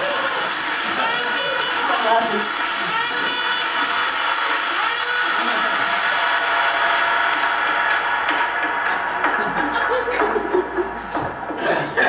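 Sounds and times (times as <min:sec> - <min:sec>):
rap backing track over pa: 0:00.0 - 0:12.0.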